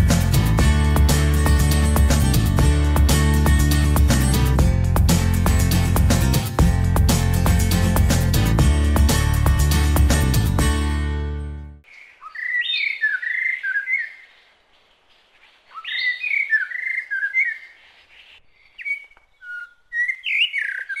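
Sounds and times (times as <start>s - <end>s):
songbird warbling: 11.9s - 21.0s.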